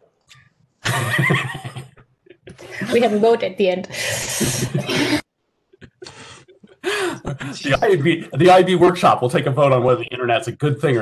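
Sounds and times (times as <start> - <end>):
person laughing over video call: 0.8 - 2.7
person speaking: 7.2 - 11.0.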